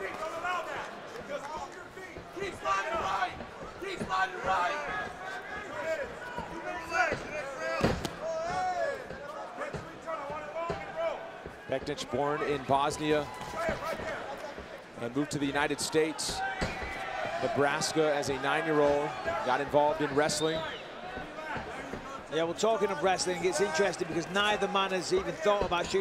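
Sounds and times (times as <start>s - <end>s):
arena crowd: 0.0s - 26.0s.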